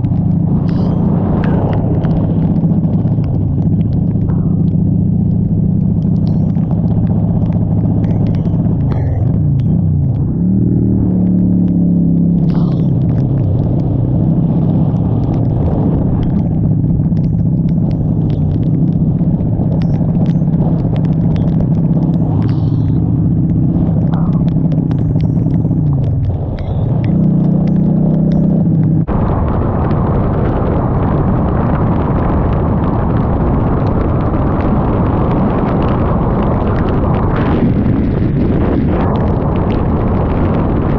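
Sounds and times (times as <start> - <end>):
raindrops ticking on windshield: 0.0 - 10.3, 11.2 - 29.0
motorcycle engine running: 0.0 - 40.9
wind rumble: 0.0 - 40.9.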